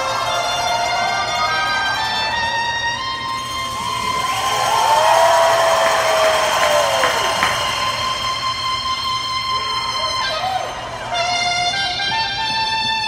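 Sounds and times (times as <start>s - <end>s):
crowd cheering: 0.0s - 12.1s
saxophone holding high note: 0.0s - 13.0s.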